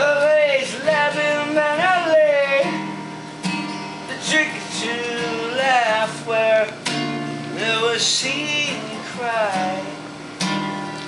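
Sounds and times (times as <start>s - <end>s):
man singing: 0.0s - 2.9s, 4.1s - 10.1s
acoustic guitar strumming: 0.0s - 11.0s.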